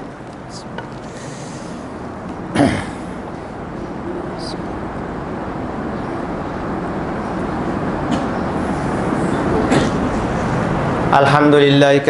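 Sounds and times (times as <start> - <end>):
hall background noise: 0.0 - 12.0.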